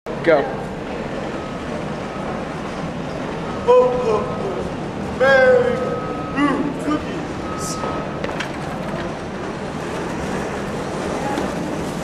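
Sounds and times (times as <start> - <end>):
room noise rumble and hiss: 0.1 - 12.0
faint high steady tone: 3.2 - 8.3.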